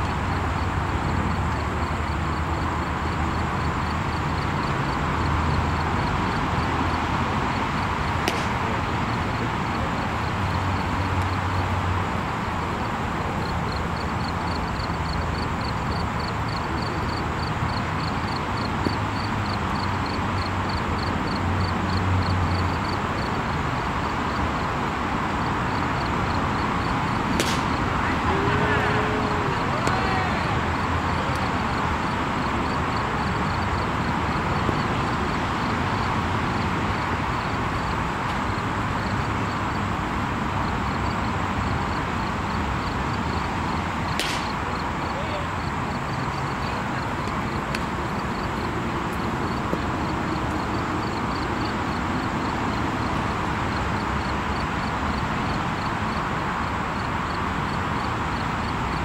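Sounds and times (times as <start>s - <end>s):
outdoor background noise: 0.0s - 59.0s
baseball popping into leather mitt: 8.2s - 8.7s, 27.3s - 27.8s, 44.2s - 44.6s.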